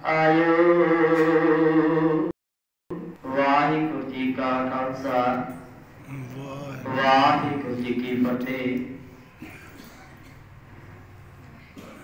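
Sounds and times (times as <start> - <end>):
man speaking: 3.3 - 9.1.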